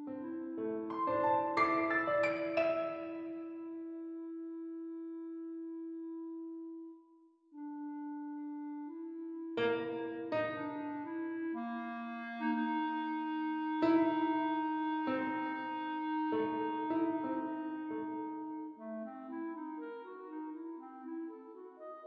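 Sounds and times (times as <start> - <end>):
piano chords: 0.0 - 7.0, 8.6 - 22.0
clarinet: 0.0 - 22.0.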